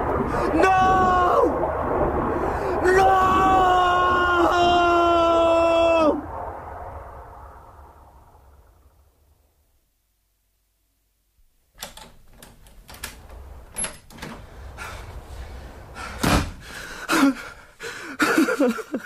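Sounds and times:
person crying out: 0:00.3 - 0:01.6, 0:02.8 - 0:06.2
knocks and rattles: 0:11.8 - 0:14.5
man gasping: 0:16.0 - 0:18.4
heavy door banging shut: 0:16.2 - 0:16.7.

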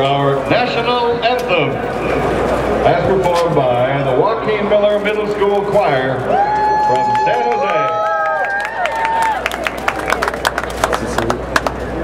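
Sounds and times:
murmur of crowd voices: 0:00.0 - 0:08.1, 0:08.8 - 0:12.0
crowd hand claps: 0:06.9 - 0:12.0.

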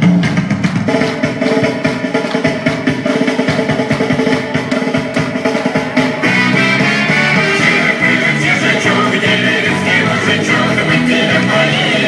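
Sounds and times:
fast folk dance music: 0:00.0 - 0:12.0
rapid driving drumming: 0:00.0 - 0:12.0.

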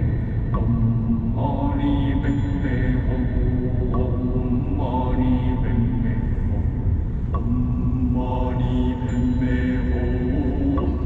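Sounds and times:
low rumble: 0:00.0 - 0:11.0
slow chant-like music: 0:00.0 - 0:11.0.

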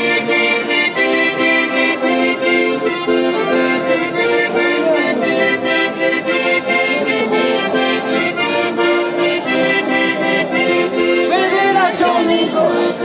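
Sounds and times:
accordion playing folk tune: 0:00.0 - 0:13.0.

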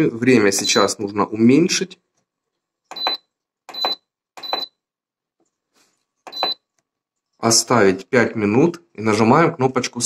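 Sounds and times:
control panel beeping: 0:00.5 - 0:01.0, 0:02.9 - 0:04.8, 0:06.3 - 0:06.7.

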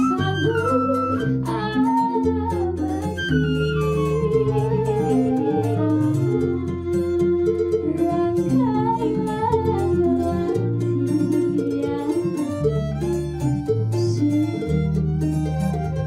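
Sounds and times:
woman singing: 0:00.0 - 0:12.7
flute: 0:00.0 - 0:16.0
plucked bass line: 0:00.0 - 0:16.0
small lutes strumming: 0:00.0 - 0:16.0
violin: 0:00.0 - 0:16.0.

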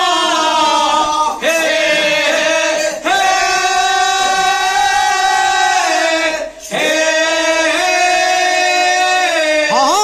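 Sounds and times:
men singing a long note: 0:00.0 - 0:10.0.

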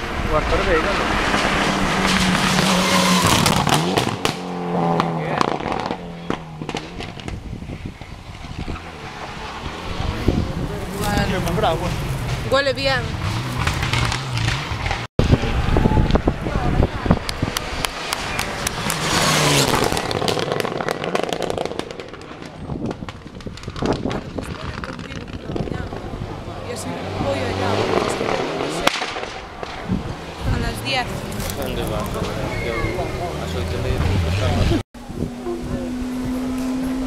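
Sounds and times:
rally car engine: 0:00.0 - 0:37.0
engine cracks and pops: 0:01.2 - 0:08.9, 0:13.4 - 0:15.1, 0:17.2 - 0:26.0, 0:28.2 - 0:30.0, 0:31.2 - 0:32.6
spectators talking: 0:09.9 - 0:22.8, 0:24.3 - 0:29.0, 0:29.6 - 0:36.8.

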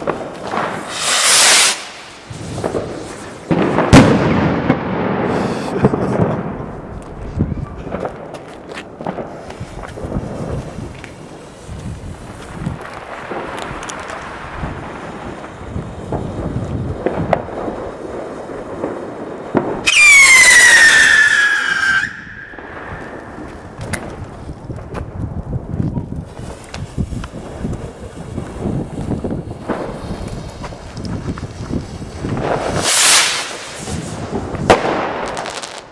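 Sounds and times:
howling firework whistle: 0:00.6 - 0:04.1, 0:19.7 - 0:23.8, 0:30.9 - 0:35.8.

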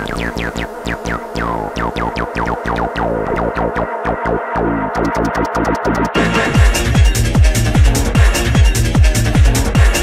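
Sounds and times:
synth falling pitch sweeps: 0:00.0 - 0:06.6
pulsing bass: 0:00.0 - 0:10.0.

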